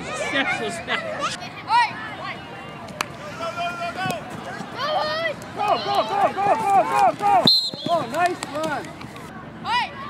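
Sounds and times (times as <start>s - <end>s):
spectators yelling excitedly: 4.8s - 7.5s.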